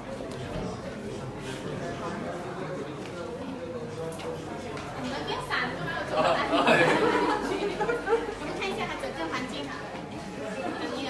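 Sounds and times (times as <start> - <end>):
group of people chattering: 0.0 - 11.0.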